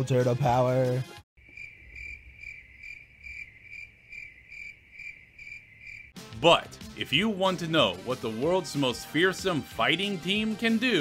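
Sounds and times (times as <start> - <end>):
crickets chirping: 1.4 - 6.2.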